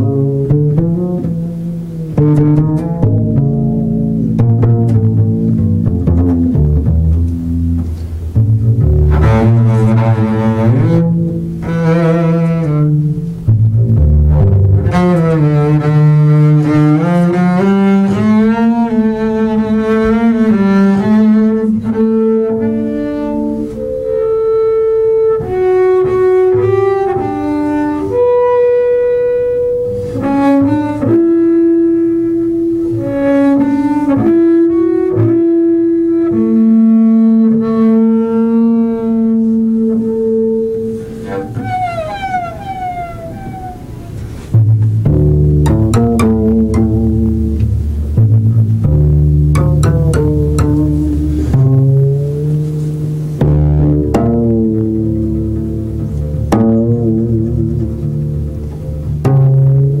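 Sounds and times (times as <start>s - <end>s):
solo double bass: 0.0s - 60.0s.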